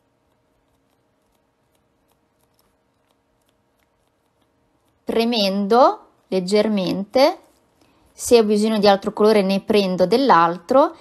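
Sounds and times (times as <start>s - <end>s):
makeup sponge dabbing ticks: 0.0s - 9.3s.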